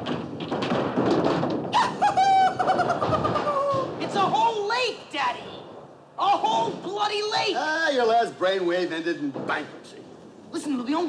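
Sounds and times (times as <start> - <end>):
bowling ball rolling on wooden lane: 0.0 - 5.9.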